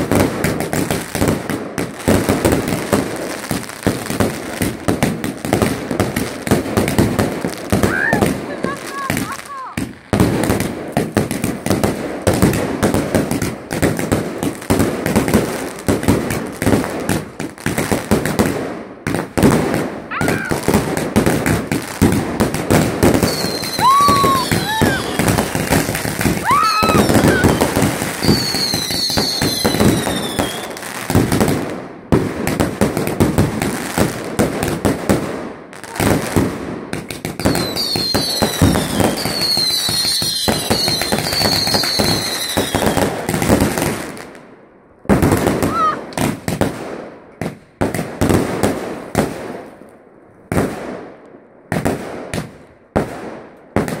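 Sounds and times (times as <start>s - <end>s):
fireworks bangs and crackling: 0.0s - 54.0s
shrill descending firework whistles: 23.2s - 25.8s, 26.4s - 30.9s, 37.4s - 42.9s.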